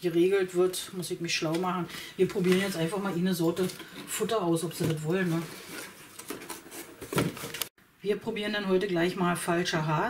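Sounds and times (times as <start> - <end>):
rustling in cardboard box: 2.3 - 7.6.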